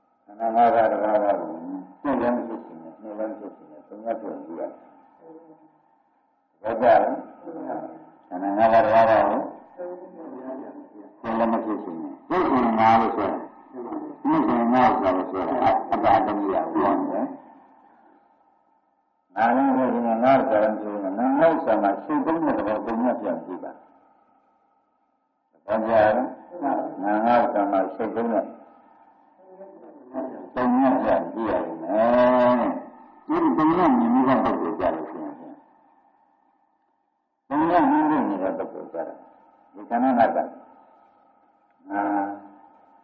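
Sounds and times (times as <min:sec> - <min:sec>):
man preaching: 0:00.3 - 0:05.0, 0:06.6 - 0:17.6, 0:19.4 - 0:23.8, 0:25.6 - 0:28.7, 0:29.6 - 0:35.8, 0:37.5 - 0:40.7, 0:41.9 - 0:42.7.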